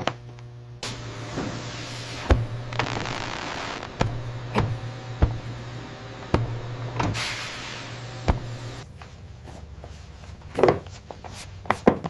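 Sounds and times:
low hum: 0:00.0 - 0:10.4
press hissing steam: 0:00.8 - 0:08.8
heavy thump: 0:02.2 - 0:03.0, 0:03.9 - 0:05.7, 0:08.2 - 0:08.8.

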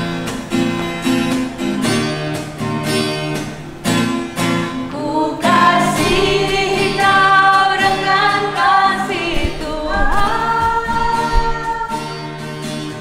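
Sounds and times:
acoustic guitar: 0:00.0 - 0:13.0
women singing worship song: 0:04.8 - 0:12.6.

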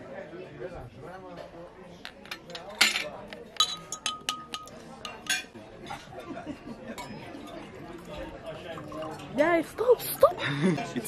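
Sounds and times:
tableware clinking: 0:01.4 - 0:09.4
glass ringing: 0:02.5 - 0:05.5, 0:07.0 - 0:07.6.

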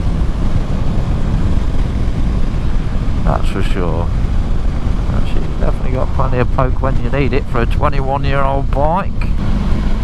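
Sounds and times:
motorcycle engine: 0:00.0 - 0:10.0
wind rushing over microphone: 0:00.0 - 0:10.0.

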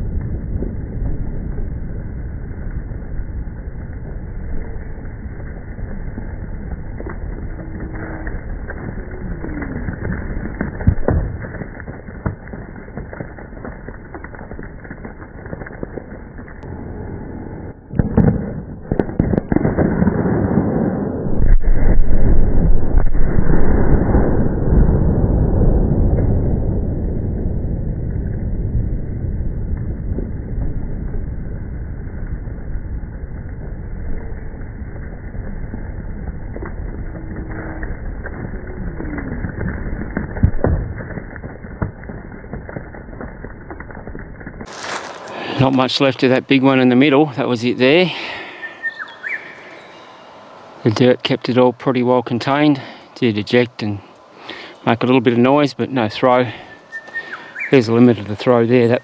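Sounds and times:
heavy explosion rumble: 0:00.0 - 0:44.7.

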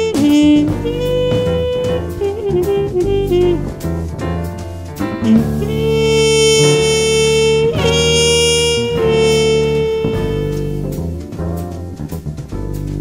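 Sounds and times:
band sustaining underneath: 0:00.0 - 0:13.0
jazz trumpet sustained notes: 0:00.0 - 0:13.0.

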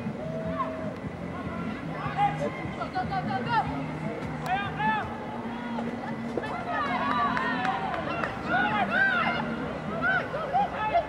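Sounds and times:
women shouting and calling: 0:06.5 - 0:11.0.

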